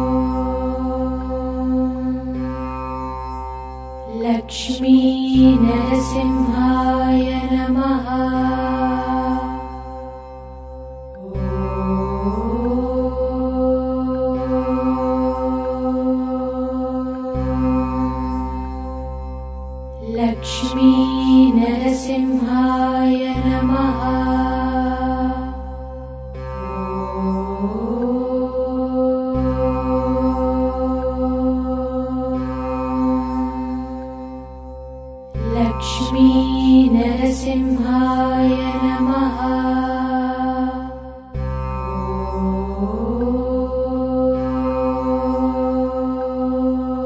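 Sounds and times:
mantra chant singing: 0:04.1 - 0:09.7, 0:11.2 - 0:18.4, 0:20.0 - 0:25.8, 0:26.8 - 0:34.0, 0:35.4 - 0:41.4, 0:42.0 - 0:47.0.

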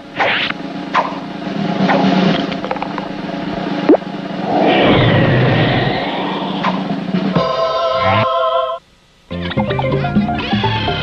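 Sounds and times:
rushing whirlwind: 0:04.2 - 0:08.2.

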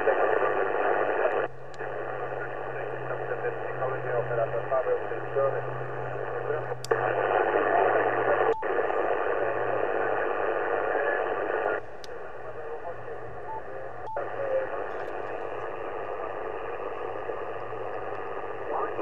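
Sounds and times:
radio band noise hiss: 0:00.0 - 0:19.0
weak voice on radio: 0:00.0 - 0:19.0.

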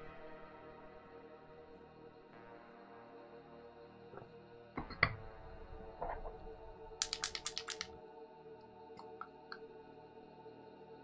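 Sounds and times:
soft ambient music: 0:00.0 - 0:11.0
computer keyboard keystrokes: 0:06.9 - 0:07.9.

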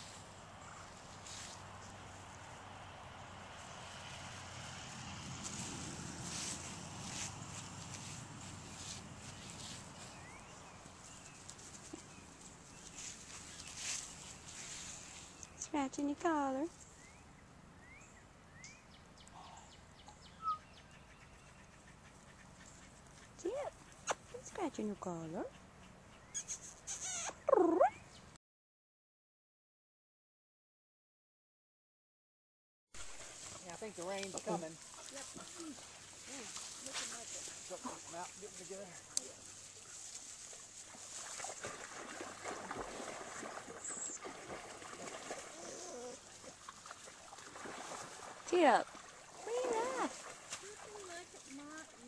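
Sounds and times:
dry grass rustling and crackling: 0:00.0 - 0:02.6, 0:03.4 - 0:15.6, 0:33.0 - 0:43.6
bird chirps: 0:08.7 - 0:11.4, 0:16.8 - 0:22.9, 0:26.1 - 0:28.3
puppy squeak: 0:26.3 - 0:28.0.

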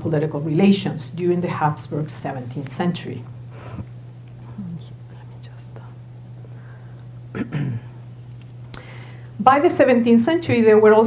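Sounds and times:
low electrical hum: 0:00.0 - 0:11.0
faint breathing: 0:03.5 - 0:04.6, 0:06.4 - 0:07.1, 0:08.7 - 0:09.4.

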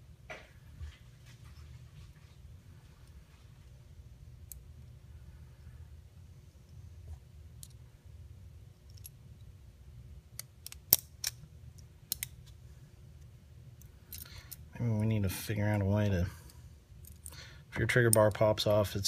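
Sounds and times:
small metal parts clicking: 0:08.8 - 0:09.2, 0:10.4 - 0:12.4, 0:13.8 - 0:14.7, 0:17.0 - 0:17.4.

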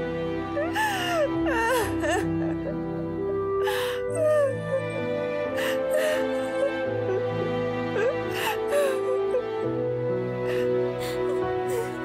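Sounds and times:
slow background music: 0:00.0 - 0:12.0
girl crying and whimpering: 0:00.6 - 0:12.0.

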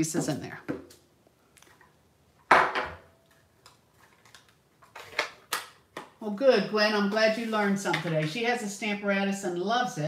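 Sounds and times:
faint clicks and rustles: 0:00.3 - 0:02.0, 0:03.2 - 0:06.1.

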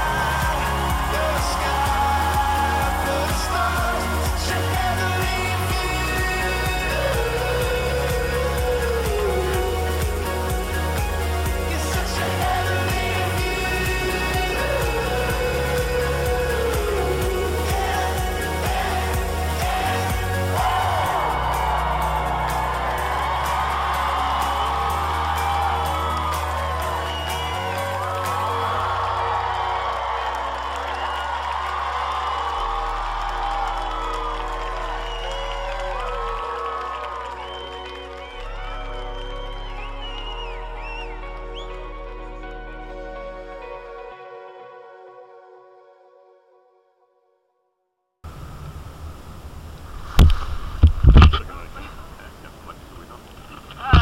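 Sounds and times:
crowd whoops: 0:00.0 - 0:43.4, 0:50.0 - 0:54.0
pop music: 0:00.0 - 0:44.9, 0:53.8 - 0:54.0
wind rumbling on microphone: 0:48.3 - 0:54.0.

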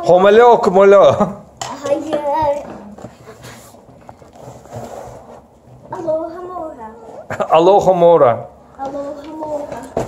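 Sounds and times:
child's voice: 0:01.6 - 0:02.9, 0:05.9 - 0:07.2, 0:08.8 - 0:10.0.

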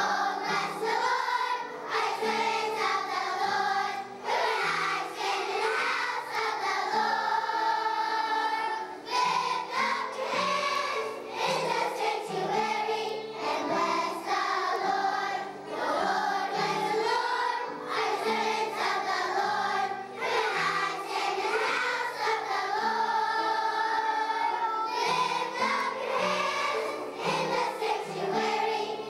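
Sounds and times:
children singing in unison: 0:00.0 - 0:29.0.

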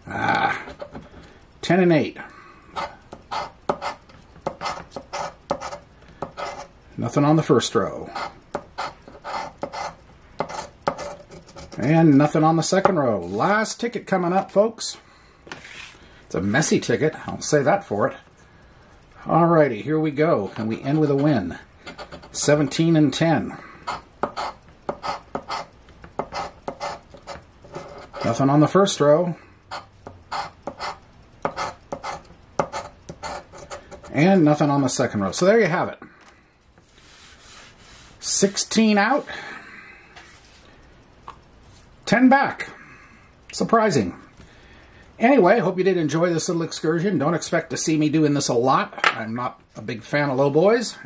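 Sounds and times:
coin scraping scratch card: 0:02.7 - 0:06.7, 0:08.1 - 0:11.9, 0:21.1 - 0:22.4, 0:23.8 - 0:28.4, 0:29.7 - 0:34.2.

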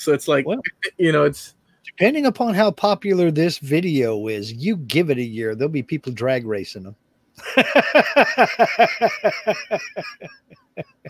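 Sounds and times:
man laughing heartily: 0:07.4 - 0:11.0.

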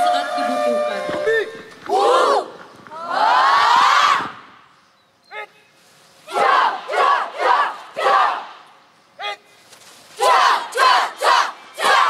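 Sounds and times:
group shouting in unison: 0:01.9 - 0:04.3, 0:06.3 - 0:08.6, 0:10.2 - 0:12.0.

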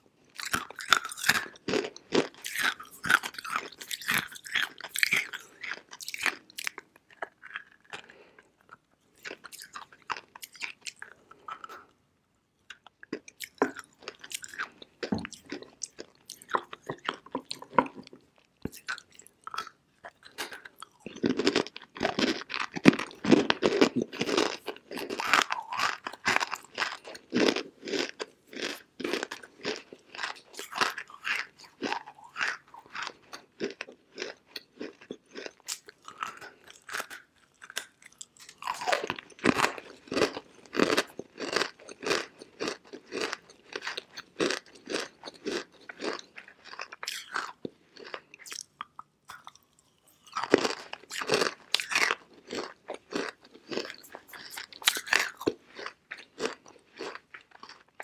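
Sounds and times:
clay chunks crunching when chewed: 0:00.3 - 0:58.0.

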